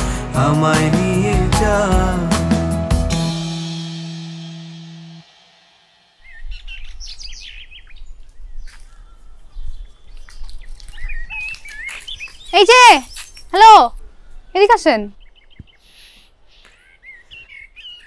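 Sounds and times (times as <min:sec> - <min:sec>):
song: 0:00.0 - 0:06.2
small birds chirping: 0:06.2 - 0:18.0.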